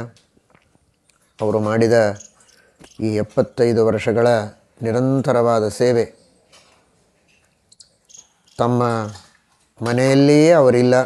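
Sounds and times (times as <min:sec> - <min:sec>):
man speaking: 0:01.4 - 0:06.2, 0:08.6 - 0:11.0
high-pitched chirps: 0:02.1 - 0:03.1.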